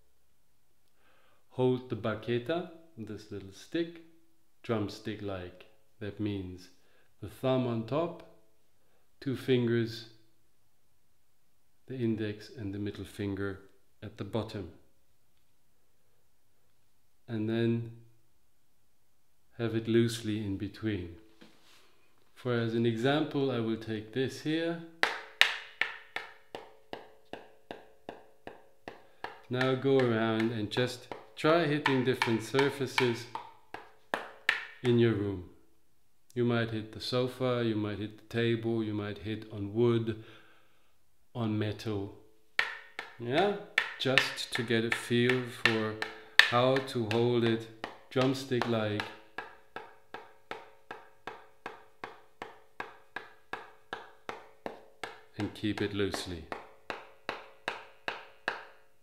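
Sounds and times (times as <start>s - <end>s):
wooden stick tapping a block: 25.0s - 35.0s, 42.6s - 59.0s.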